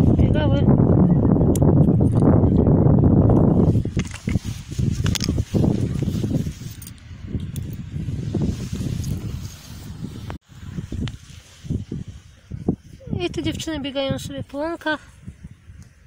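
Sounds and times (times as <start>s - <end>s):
low rumble on microphone: 0.0s - 16.0s
grass rustling: 3.1s - 13.2s.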